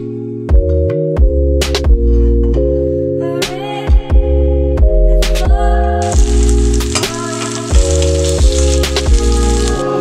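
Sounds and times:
background music: 0:00.0 - 0:10.0
tomato slices sizzling in oil: 0:06.0 - 0:10.0.

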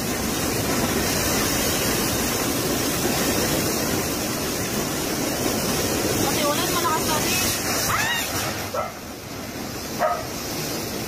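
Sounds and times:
driving rain: 0:00.0 - 0:11.0
strong wind: 0:00.0 - 0:11.0.

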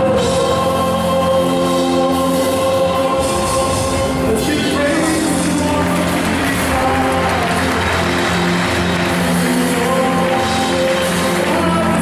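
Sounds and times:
praise band with choir: 0:00.0 - 0:12.0.

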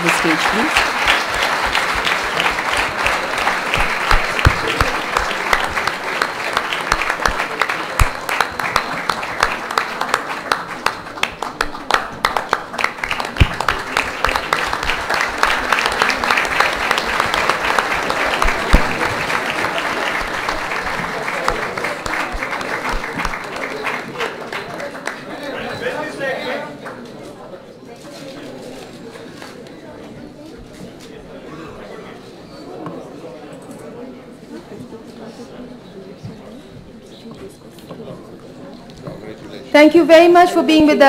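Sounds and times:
audience applause: 0:00.0 - 0:27.0.

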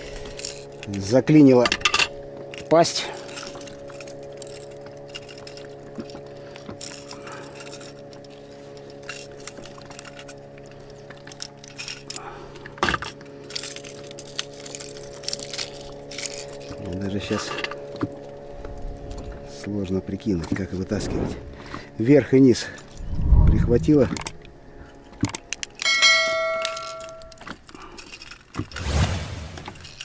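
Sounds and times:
low hum: 0:22.7 - 0:27.6, 0:28.2 - 0:30.0
metal tools clicking: 0:25.2 - 0:27.5.

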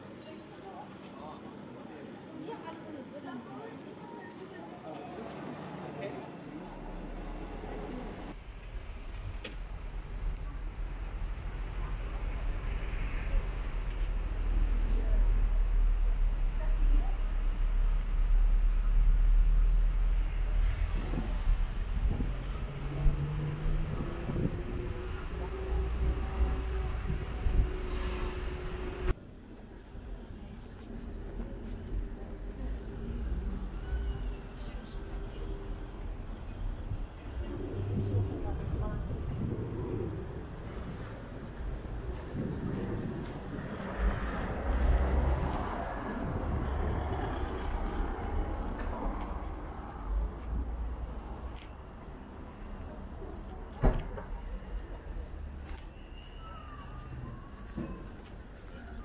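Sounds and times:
passers-by talking: 0:00.0 - 0:08.4, 0:29.8 - 0:59.0
street traffic: 0:00.0 - 0:59.0.

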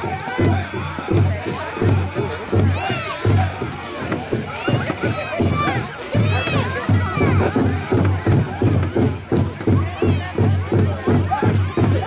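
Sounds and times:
drum struck in steady beat: 0:00.0 - 0:12.0.

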